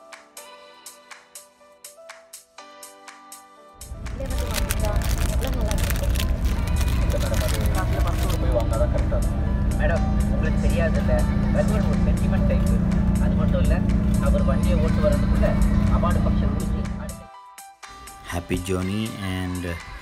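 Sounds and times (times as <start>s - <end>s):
music with singing: 0.0s - 20.0s
bus engine and road rumble: 3.8s - 17.2s.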